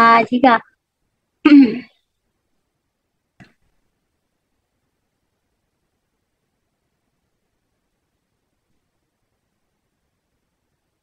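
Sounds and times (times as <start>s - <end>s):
person short vocal sound: 1.5s - 1.9s.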